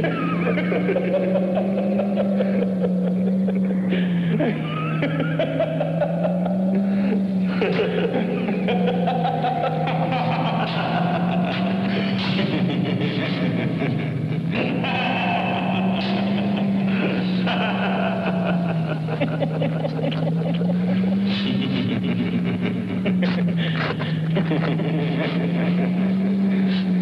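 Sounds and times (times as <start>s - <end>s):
low wavering hum: 0.0s - 27.0s
men laughing and cackling: 0.0s - 27.0s.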